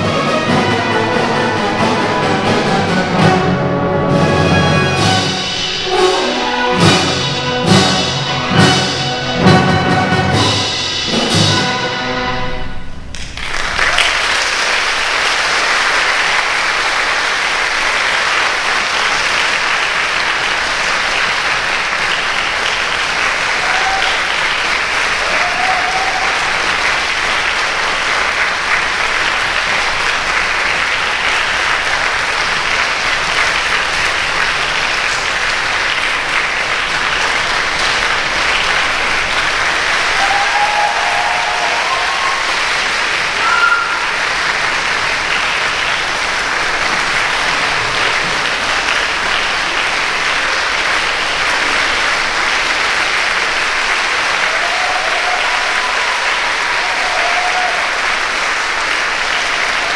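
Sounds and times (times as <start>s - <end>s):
audience applauding: 0.0s - 10.8s, 13.1s - 59.9s
pitched calls from crowd: 15.7s - 32.5s, 37.1s - 59.9s.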